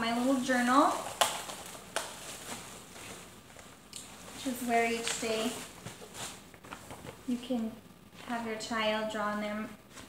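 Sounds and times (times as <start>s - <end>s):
plastic rustling: 0.0s - 8.5s
plastic bag seal snapping open: 1.0s - 2.2s.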